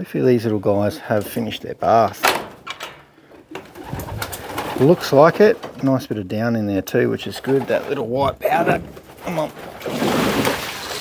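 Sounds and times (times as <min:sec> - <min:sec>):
pigeons rustling: 0:01.2 - 0:11.0.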